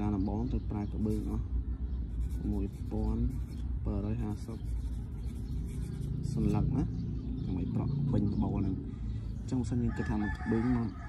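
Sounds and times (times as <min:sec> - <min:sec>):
person speaking: 0:02.2 - 0:10.7.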